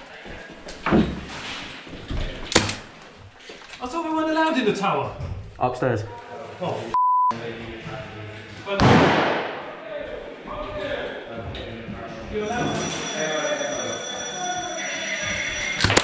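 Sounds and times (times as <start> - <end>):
censor bleep: 7.0 - 7.4
faint voices: 9.6 - 15.8
steady high tones: 12.4 - 16.0.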